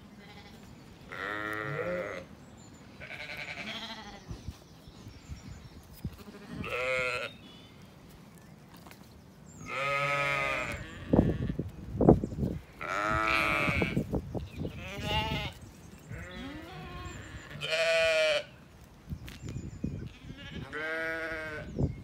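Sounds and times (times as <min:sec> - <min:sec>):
sheep bleating: 0:00.2 - 0:02.3, 0:03.0 - 0:04.2, 0:06.2 - 0:07.3, 0:09.7 - 0:11.6, 0:12.8 - 0:14.0, 0:14.8 - 0:18.5, 0:20.2 - 0:21.7.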